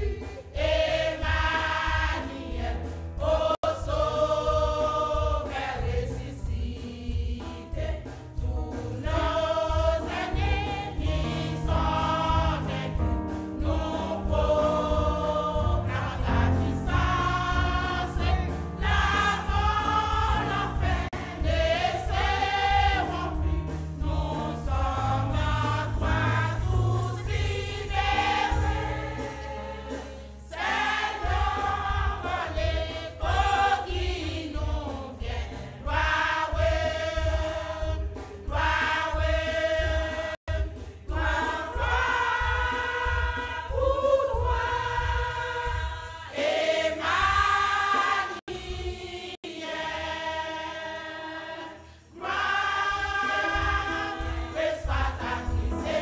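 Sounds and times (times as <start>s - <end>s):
low even beat: 0.0s - 29.9s
church choir singing: 0.0s - 56.0s.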